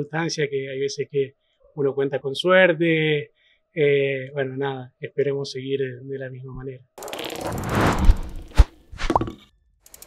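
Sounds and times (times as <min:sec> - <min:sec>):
short swoosh with upward glide: 0:07.1 - 0:09.1
whoosh: 0:07.2 - 0:09.1.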